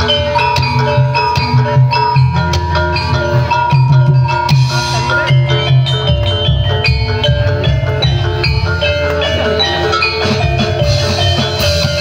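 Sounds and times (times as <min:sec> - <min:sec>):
metallophones ringing pattern: 0:00.0 - 0:12.0
steady low drum: 0:00.0 - 0:12.0.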